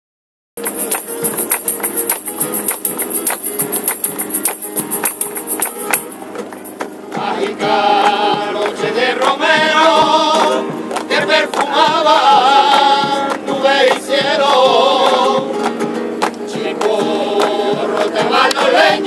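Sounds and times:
choir singing: 0:00.6 - 0:15.7, 0:16.4 - 0:19.0
rhythmic instrumental beats: 0:00.6 - 0:19.0.

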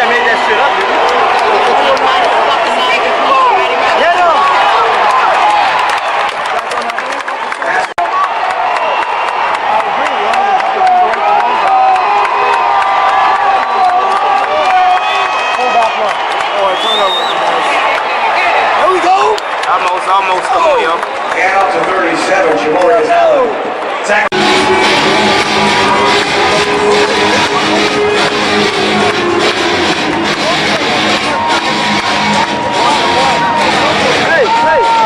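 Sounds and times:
stadium crowd talking and shouting: 0:00.0 - 0:35.0.

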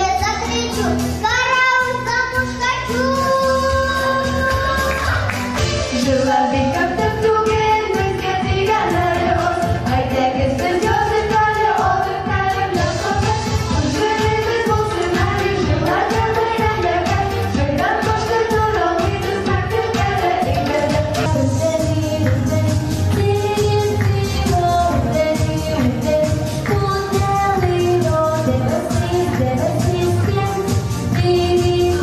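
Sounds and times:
backing track with steady beat: 0:00.0 - 0:32.0
girls singing: 0:02.9 - 0:32.0.

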